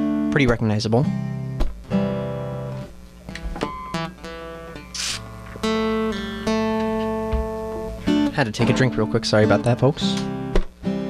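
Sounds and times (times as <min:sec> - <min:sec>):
acoustic guitar notes plucked: 0:00.0 - 0:11.0
short hiss: 0:04.9 - 0:05.3.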